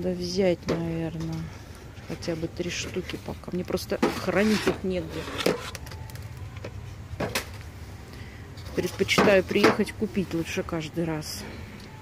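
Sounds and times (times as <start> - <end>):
low store background hum: 0.0 - 12.0.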